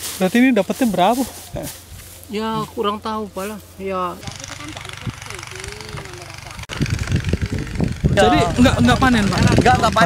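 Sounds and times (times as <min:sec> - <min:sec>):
small engine idling: 0:01.0 - 0:10.0
irregular low rumble with thumps: 0:04.2 - 0:10.0.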